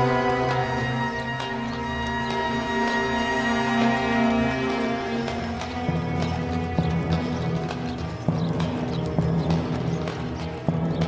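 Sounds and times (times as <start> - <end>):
film music: 0.0 - 11.0
horse hooves clip-clopping: 0.0 - 11.0.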